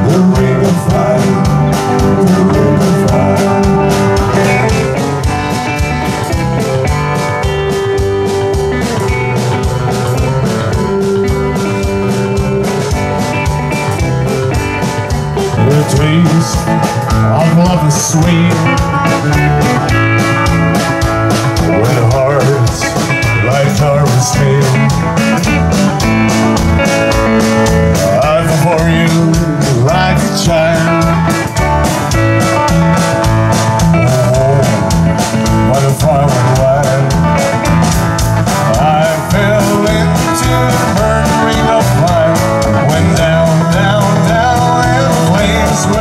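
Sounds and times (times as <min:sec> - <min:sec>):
bass guitar: 0:00.0 - 0:46.0
drum kit beat: 0:00.0 - 0:46.0
electric guitar: 0:00.0 - 0:46.0
strummed acoustic guitar: 0:00.0 - 0:46.0.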